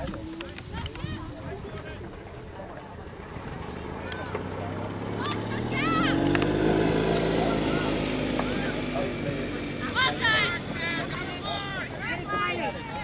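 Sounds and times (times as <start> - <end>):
vehicle engine humming: 0.0 - 13.0.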